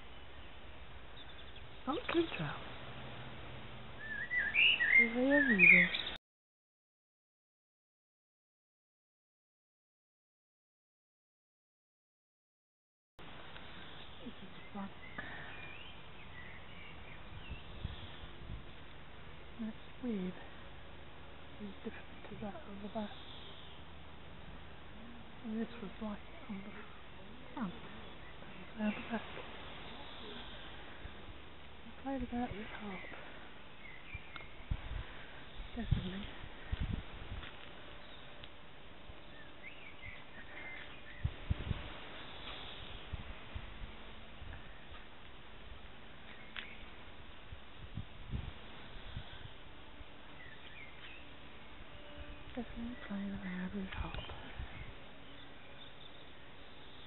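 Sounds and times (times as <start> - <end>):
faint bird chirps: 4.0 - 6.2, 21.8 - 24.0, 24.7 - 31.3, 50.3 - 57.0
background hiss: 13.2 - 57.0.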